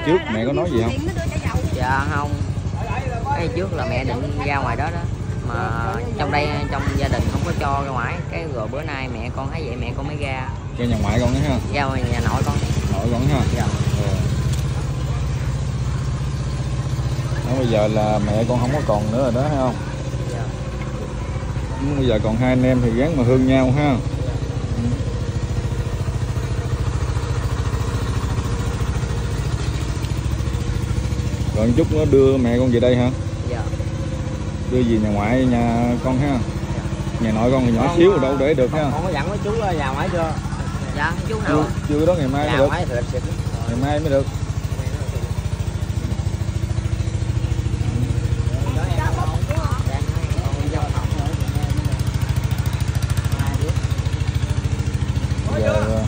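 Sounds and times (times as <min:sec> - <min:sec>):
engine idling: 0:00.0 - 0:56.0.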